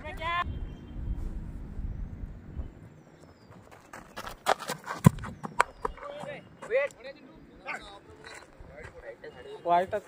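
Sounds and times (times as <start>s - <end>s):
running footsteps on hard ground: 3.2s - 7.0s.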